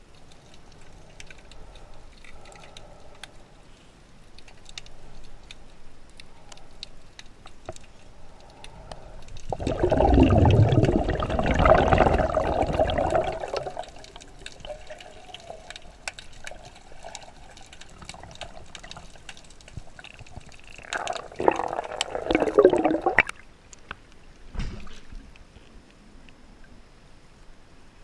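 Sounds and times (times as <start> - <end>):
faint clicks: 0.0 - 9.5
water sloshing and bubbling: 0.0 - 25.7.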